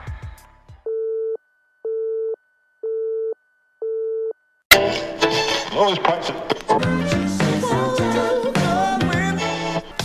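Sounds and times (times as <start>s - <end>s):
music: 0.0s - 0.9s, 4.7s - 10.0s
telephone busy tone beeps: 0.9s - 4.4s.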